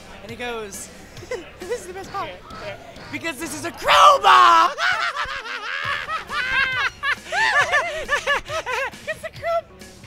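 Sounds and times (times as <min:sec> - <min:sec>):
men cackling laughter: 0:04.2 - 0:09.6.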